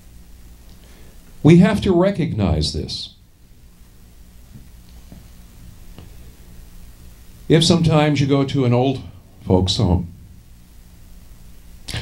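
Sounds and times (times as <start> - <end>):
faint low hum: 0.0 - 12.0
sharp intake of breath: 0.8 - 1.2.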